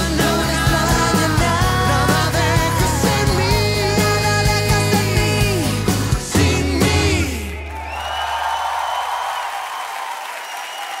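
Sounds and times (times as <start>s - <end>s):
audience applause: 7.6s - 11.0s.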